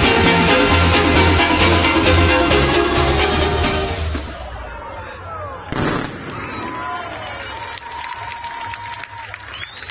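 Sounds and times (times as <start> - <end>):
crowd voices: 3.8 - 7.5
firework bang: 5.7 - 6.4.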